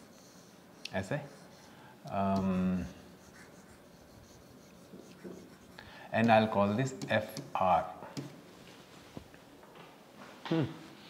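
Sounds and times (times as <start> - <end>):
stylus scratching on pen display: 0.0 - 1.7, 2.6 - 7.5.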